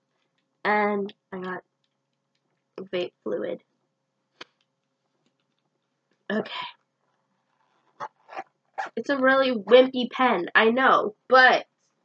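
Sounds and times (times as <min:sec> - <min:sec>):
person speaking: 0:02.8 - 0:03.6, 0:06.3 - 0:06.7, 0:08.0 - 0:11.6.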